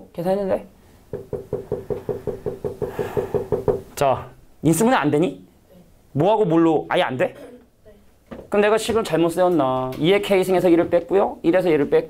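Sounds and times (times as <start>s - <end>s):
rapid hollow tapping: 1.1s - 3.9s.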